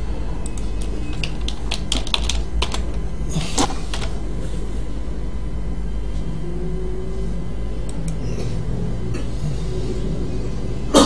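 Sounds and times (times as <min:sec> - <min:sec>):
steady low hum: 0:00.0 - 0:11.0
computer keyboard keystrokes: 0:00.4 - 0:03.0, 0:03.6 - 0:04.1.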